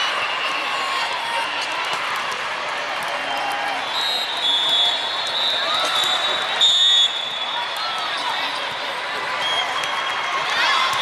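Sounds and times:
many voices: 0.0s - 11.0s
referee's whistle blast: 3.8s - 8.0s.

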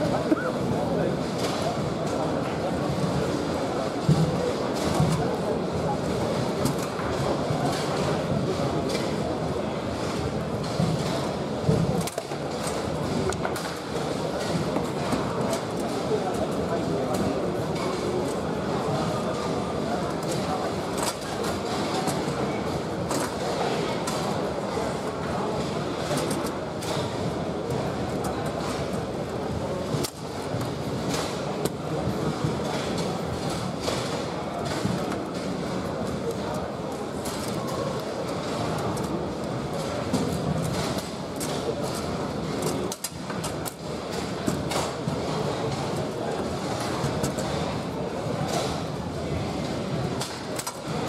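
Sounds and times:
murmur of indistinct voices: 0.0s - 51.0s.

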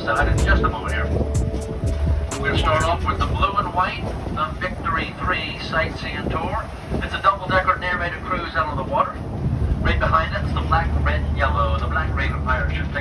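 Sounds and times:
person talking: 0.0s - 1.3s, 2.3s - 5.2s
vehicle engine rumble: 0.0s - 5.2s, 8.7s - 13.0s.

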